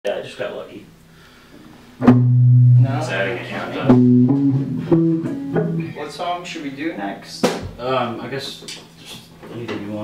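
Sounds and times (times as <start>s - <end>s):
plucked electric string notes: 2.0s - 6.2s.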